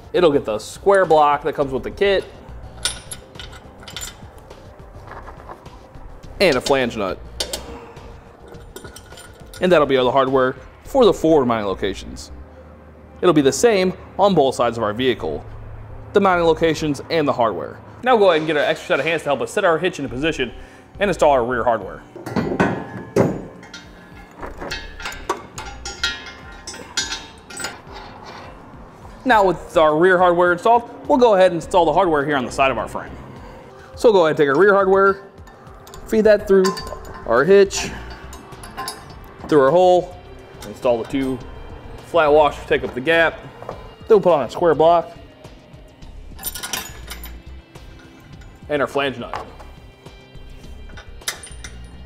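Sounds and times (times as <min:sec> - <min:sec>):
metal hitch clanking: 0:00.5 - 0:10.7, 0:18.0 - 0:30.0, 0:34.0 - 0:45.2, 0:46.0 - 0:52.0
metal hardware clinking: 0:00.9 - 0:05.8, 0:06.4 - 0:10.2, 0:22.1 - 0:28.8, 0:35.0 - 0:44.0, 0:46.2 - 0:52.0.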